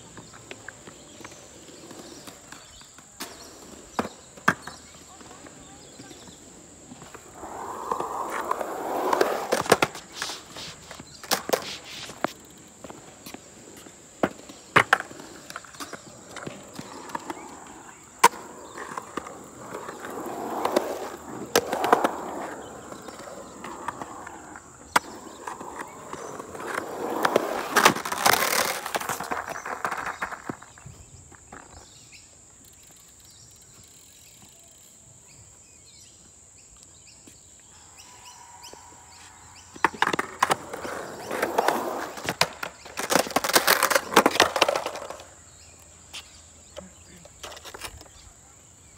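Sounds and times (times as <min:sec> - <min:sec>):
skateboard clacks: 0:00.0 - 0:30.8, 0:38.6 - 0:45.4
skateboard wheels rolling on concrete: 0:00.0 - 0:48.9.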